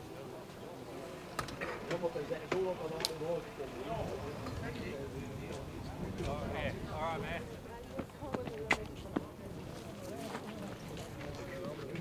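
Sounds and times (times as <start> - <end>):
people talking nearby: 0.0 - 12.0.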